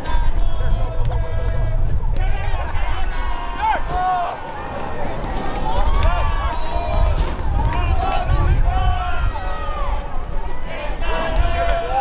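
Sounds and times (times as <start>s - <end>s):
steady low rumble: 0.0s - 12.0s
distant voices shouting: 1.5s - 12.0s.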